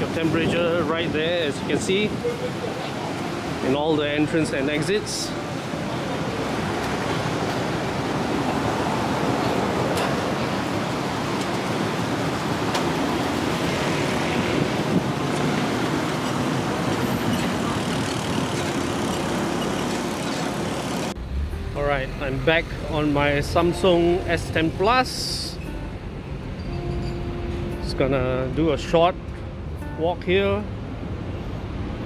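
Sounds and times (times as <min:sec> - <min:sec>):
road traffic noise: 0:00.0 - 0:32.0.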